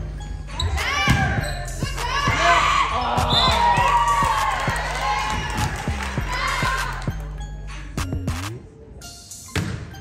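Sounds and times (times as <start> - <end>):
people shouting in a gym: 0.5 - 7.2.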